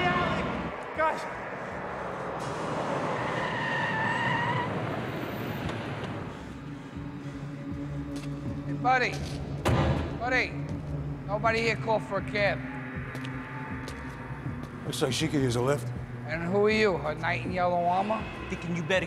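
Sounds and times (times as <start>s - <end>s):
tyres squealing while braking: 2.5s - 5.5s
sharp thump: 9.6s - 10.2s.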